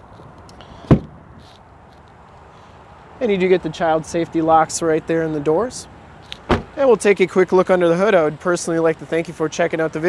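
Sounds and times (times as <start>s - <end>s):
low steady hiss: 1.6s - 10.0s.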